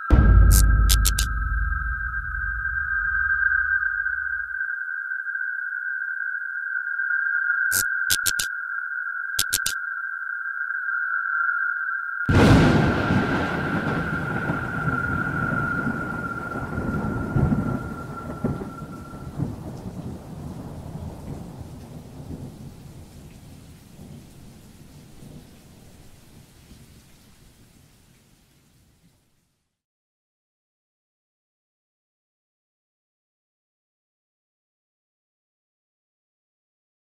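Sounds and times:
steady high-pitched tone: 0:00.0 - 0:12.1
short clicks: 0:00.5 - 0:01.3, 0:07.7 - 0:08.5, 0:09.4 - 0:09.8
rumbling thunder: 0:12.3 - 0:26.1
rain: 0:12.3 - 0:29.8.

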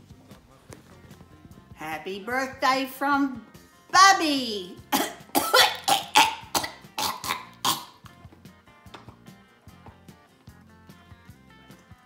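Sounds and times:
soft background music: 0:00.0 - 0:12.0
person coughing: 0:04.9 - 0:08.0.

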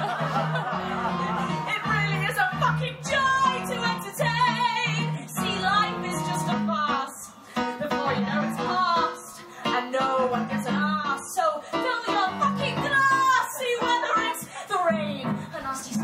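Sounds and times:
keyboard piano: 0:00.0 - 0:16.0
woman singing with vibrato: 0:01.6 - 0:16.0.

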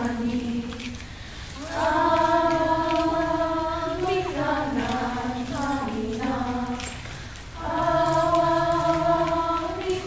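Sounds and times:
young voices chanting in unison: 0:01.6 - 0:06.8, 0:07.6 - 0:10.0.

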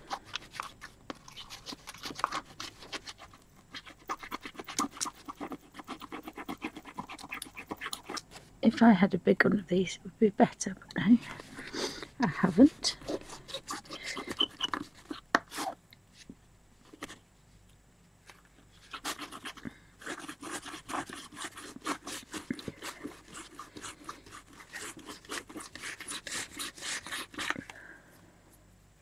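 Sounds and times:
rubbing strokes on paper: 0:18.7 - 0:27.6.

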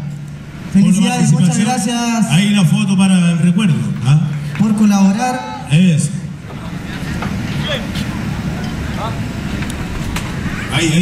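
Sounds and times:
murmur of voices: 0:02.4 - 0:11.0.

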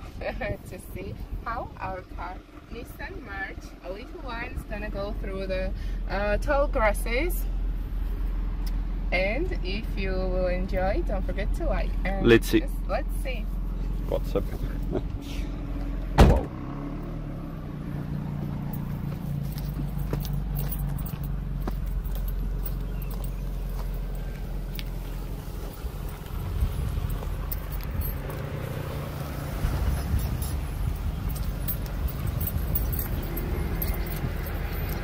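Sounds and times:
small car engine running: 0:13.5 - 0:35.0
car driving through tall grass: 0:13.8 - 0:35.0.

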